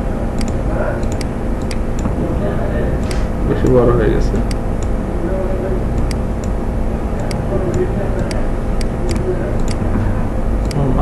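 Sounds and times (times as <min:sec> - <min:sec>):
low background rumble: 0:00.0 - 0:11.0
computer mouse clicks: 0:00.4 - 0:02.2, 0:06.0 - 0:06.6, 0:07.2 - 0:10.0, 0:10.6 - 0:10.8.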